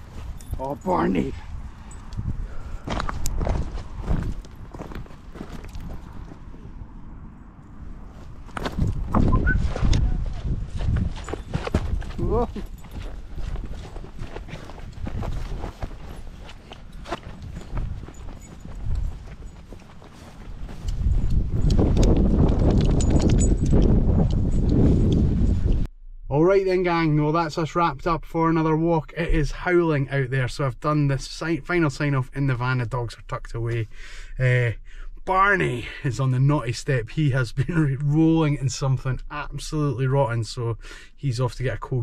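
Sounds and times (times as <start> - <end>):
wind buffeting microphone: 0.0 - 7.2, 7.9 - 25.9
footsteps on grass: 2.8 - 6.5, 8.0 - 22.7.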